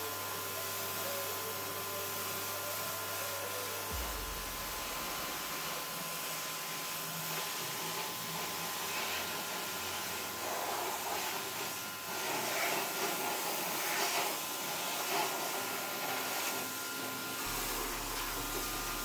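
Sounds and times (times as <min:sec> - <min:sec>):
pressure washer spraying: 0:02.2 - 0:16.5, 0:17.4 - 0:19.0.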